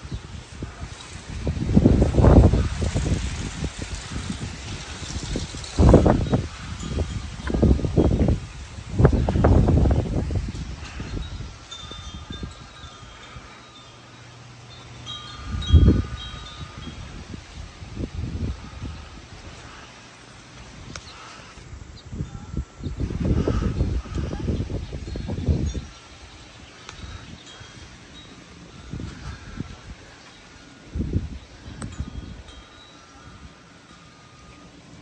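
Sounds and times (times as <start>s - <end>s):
wind buffeting microphone: 0.0s - 35.0s
faint high ringing tones: 10.8s - 17.2s, 24.9s - 35.0s.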